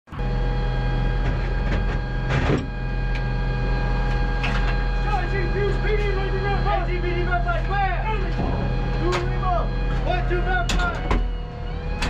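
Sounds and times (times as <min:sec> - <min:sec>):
machinery humming: 0:00.1 - 0:12.0
sharp metallic knocks: 0:08.4 - 0:11.3.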